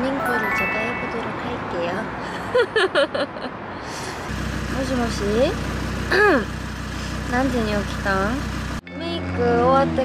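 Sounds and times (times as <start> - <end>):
woman speaking: 0.0 - 2.2
car engine hum from inside: 4.3 - 8.8.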